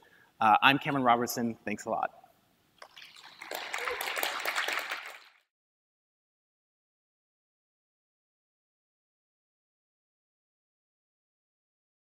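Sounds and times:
audience applauding: 2.8 - 5.5.

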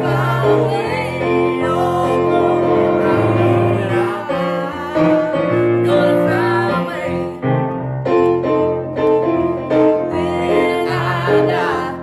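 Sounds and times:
man and woman singing gospel: 0.0 - 7.7, 9.9 - 12.0
keyboard piano chords: 0.0 - 12.0.

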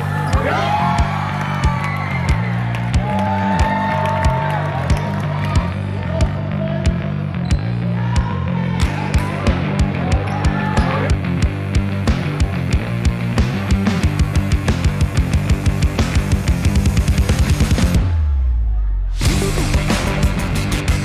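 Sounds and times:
music with heavy bass line: 0.0 - 21.0
steady drum beat: 8.0 - 18.4, 19.1 - 21.0.

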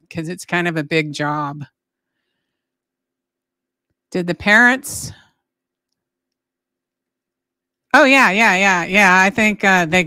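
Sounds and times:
woman speaking: 0.0 - 1.7, 4.2 - 5.2, 8.0 - 10.0.

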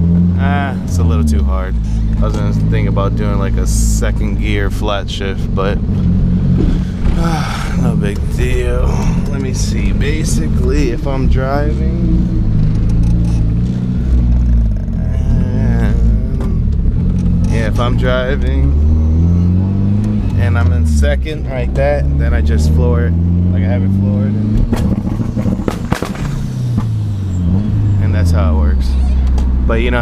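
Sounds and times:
car engine hum from inside cabin: 0.0 - 30.0.

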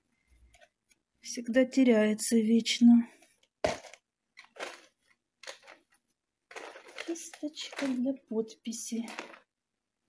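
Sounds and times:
painting supplies rustling and scraping: 0.1 - 1.2, 3.1 - 8.2, 8.8 - 9.5.

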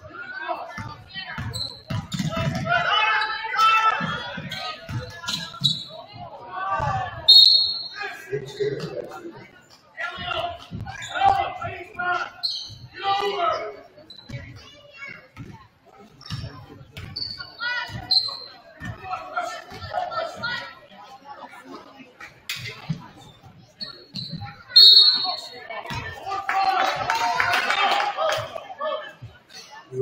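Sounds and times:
players' voices echoing: 0.0 - 30.0
sneakers squeaking: 0.2 - 20.9, 21.8 - 26.3.

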